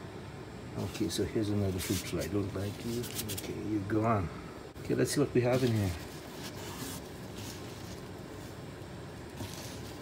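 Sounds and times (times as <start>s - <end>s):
low steady background noise: 0.0s - 10.0s
soft rustling of bedding: 5.1s - 8.6s.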